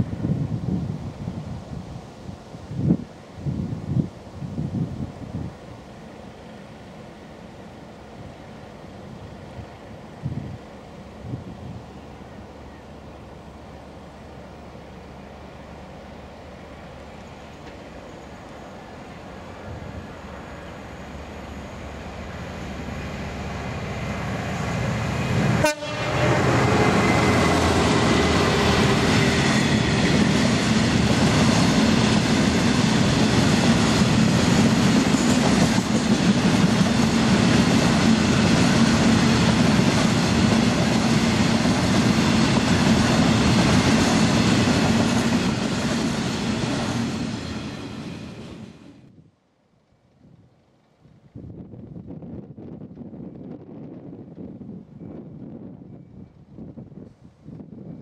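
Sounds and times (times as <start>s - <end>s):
diesel locomotive passing: 0.0s - 49.1s.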